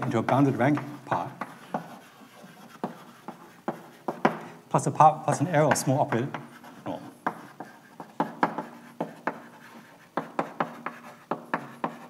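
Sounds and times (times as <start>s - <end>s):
chalk scraping on blackboard: 0.0s - 4.6s, 5.3s - 12.0s
chalk tapping on board: 0.0s - 12.0s.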